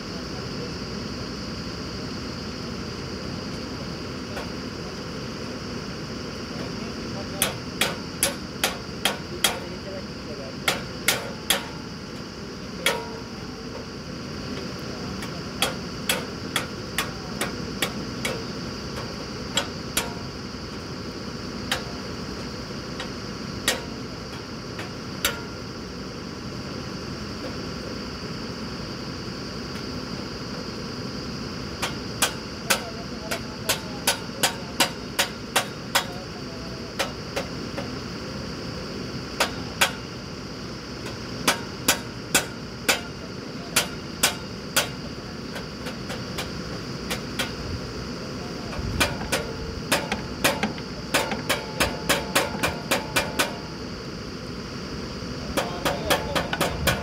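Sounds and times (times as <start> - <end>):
drilling rig engine running: 0.0 - 57.0.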